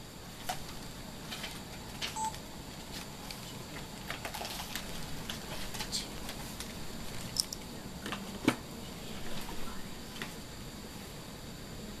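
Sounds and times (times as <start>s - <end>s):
short electronic beep: 2.2s - 2.4s
books rustling and clicking: 2.8s - 7.3s.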